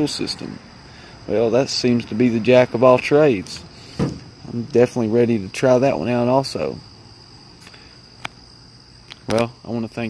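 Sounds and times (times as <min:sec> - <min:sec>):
crickets trilling: 0:00.0 - 0:10.0.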